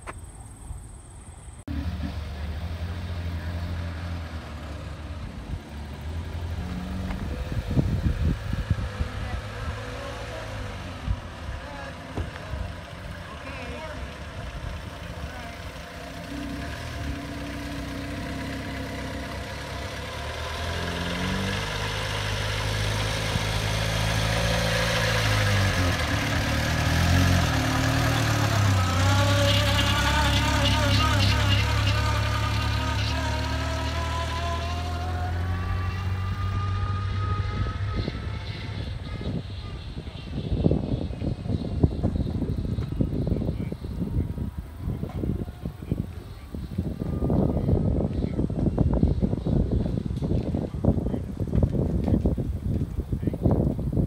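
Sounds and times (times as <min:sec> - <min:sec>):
vehicle engine running: 0:01.7 - 0:54.0
wind buffeting microphone: 0:05.3 - 0:09.9, 0:37.0 - 0:54.0.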